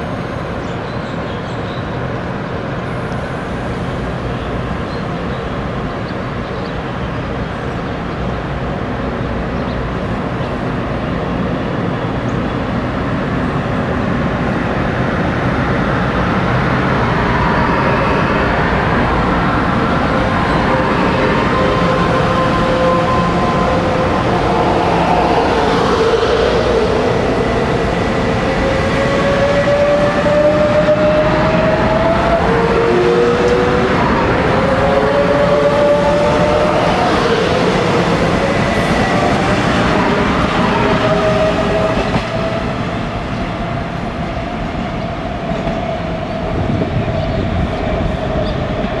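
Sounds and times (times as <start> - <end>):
rising traction whine: 14.7 - 43.8.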